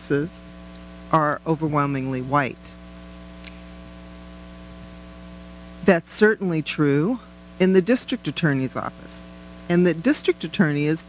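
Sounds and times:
woman speaking: 0.0 - 0.5, 1.1 - 2.8, 5.8 - 11.0
electrical mains hum: 0.0 - 11.0.

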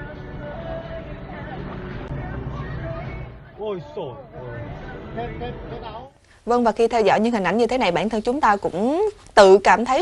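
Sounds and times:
faint voices outside: 0.4 - 6.2.

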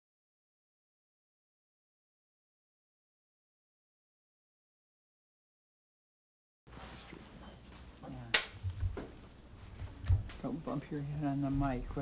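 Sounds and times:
room tone hum: 6.7 - 12.0
clapperboard snap: 8.3 - 9.1.

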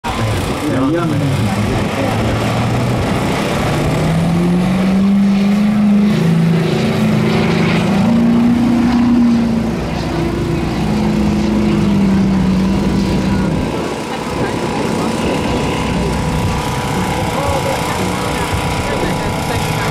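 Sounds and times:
pickup truck engines revving hard: 0.0 - 19.9.

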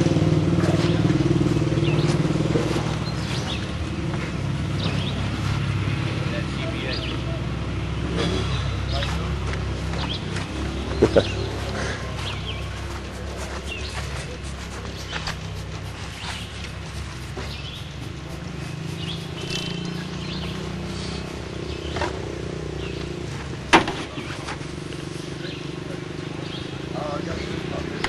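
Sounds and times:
motorcycle engine idling: 0.0 - 27.8.

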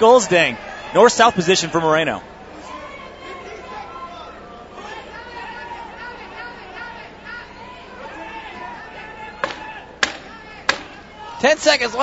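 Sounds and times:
murmur of voices: 0.0 - 12.0
sharp knocks: 9.4 - 11.0.

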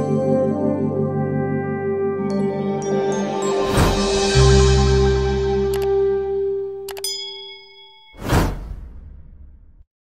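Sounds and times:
click: 5.7 - 6.0, 6.9 - 7.1
bright bell ding: 6.9 - 8.2
loud whoosh with low rumble: 8.2 - 9.9.

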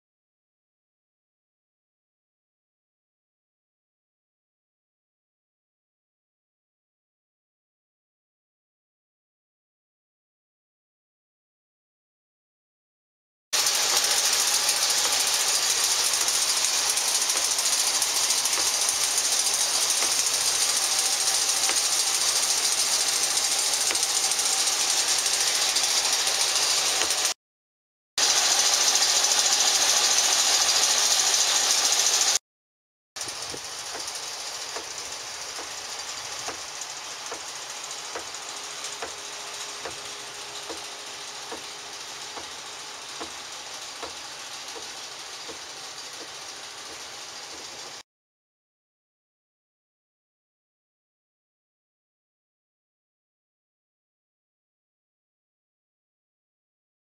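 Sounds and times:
engine running: 13.6 - 27.4, 28.2 - 32.4, 33.2 - 48.0.

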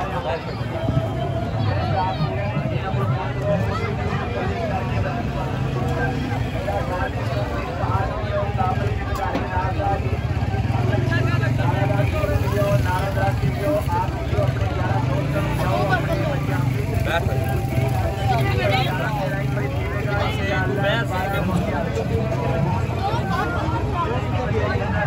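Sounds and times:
people talking: 0.0 - 25.0.

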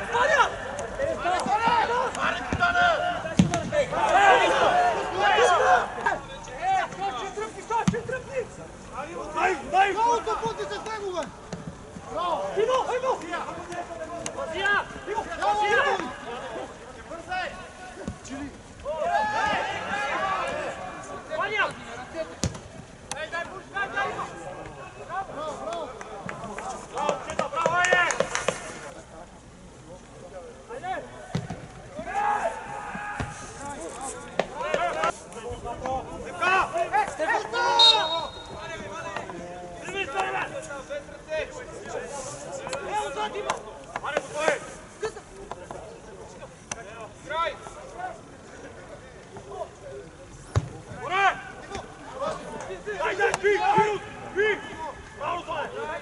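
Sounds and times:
players shouting: 0.0 - 11.4, 12.0 - 22.4, 31.9 - 42.0, 50.9 - 56.0.

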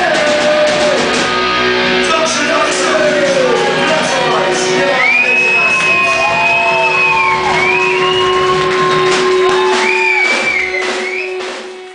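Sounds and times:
punk rock band playing live: 0.0 - 11.9.

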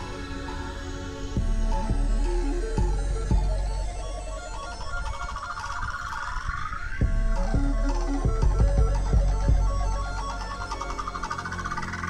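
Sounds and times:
synth sweep: 0.0 - 12.0.

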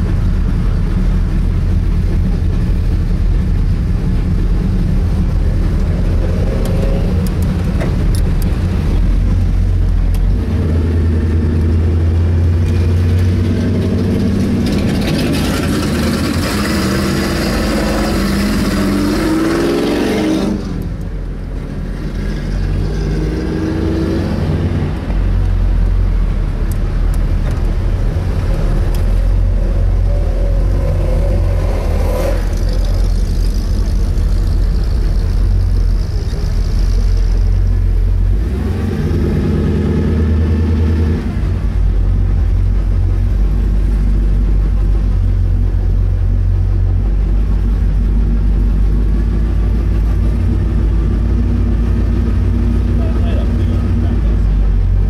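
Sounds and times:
car engine rumbling and revving: 0.0 - 55.0.

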